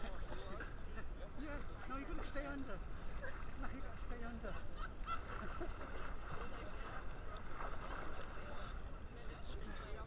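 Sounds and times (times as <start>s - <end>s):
seawater lapping and sloshing: 2.1s - 10.0s.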